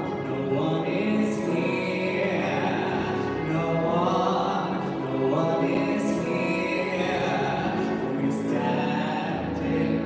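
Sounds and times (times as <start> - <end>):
live instrumental accompaniment: 0.0 - 10.0.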